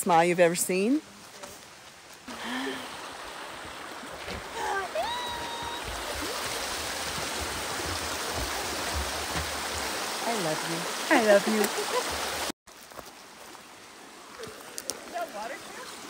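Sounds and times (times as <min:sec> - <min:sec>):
stream water rushing: 0:01.8 - 0:16.0.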